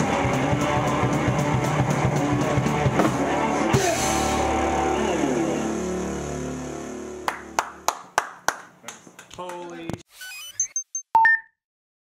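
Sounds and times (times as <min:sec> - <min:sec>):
rock band final chord: 0:00.0 - 0:07.8
hand claps: 0:07.3 - 0:09.9.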